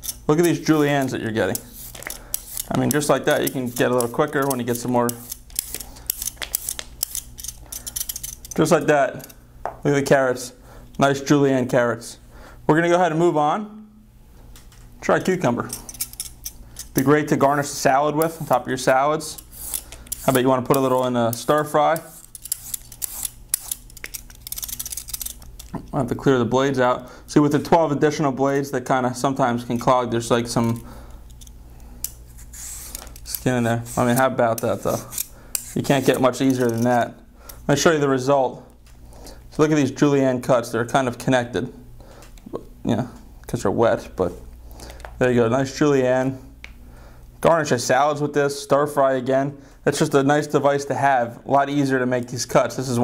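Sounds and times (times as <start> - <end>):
peeler scraping a carrot: 0.0 - 9.4, 19.4 - 25.4, 32.3 - 37.0.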